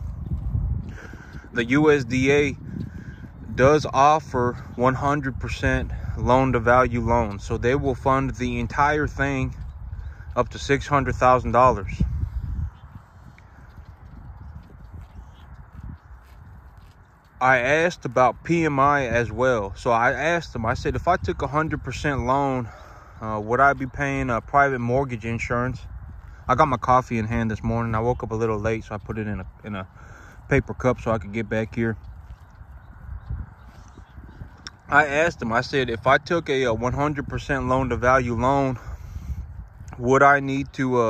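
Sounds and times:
low rumble: 0.0s - 40.7s
cattle tearing grass: 13.0s - 18.0s.

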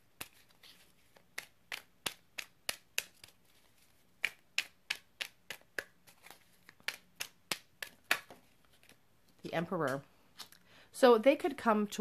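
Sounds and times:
cards being shuffled: 0.1s - 10.6s.

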